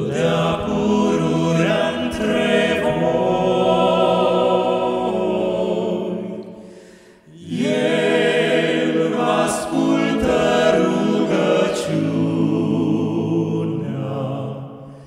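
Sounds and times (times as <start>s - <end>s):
male vocal quartet singing a cappella: 0.0s - 15.0s.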